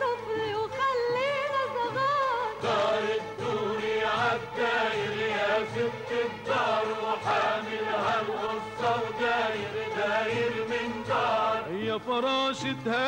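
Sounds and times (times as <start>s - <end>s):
mixed chorus singing: 2.5s - 12.2s.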